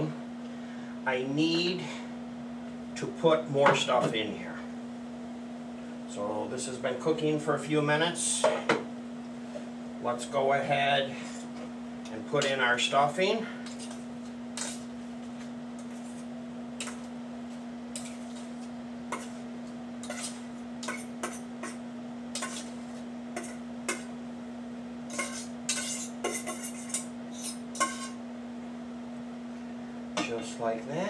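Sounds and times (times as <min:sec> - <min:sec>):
utensil scraping a saucepan: 0:20.0 - 0:21.8, 0:22.4 - 0:24.1, 0:25.1 - 0:28.2.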